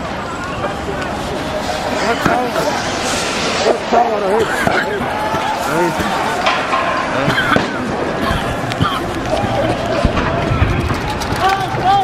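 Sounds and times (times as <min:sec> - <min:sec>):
street noise: 0:00.0 - 0:12.0.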